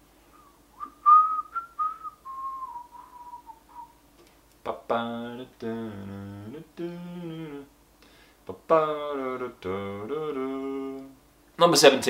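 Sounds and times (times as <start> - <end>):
person whistling: 0.3 - 4.0.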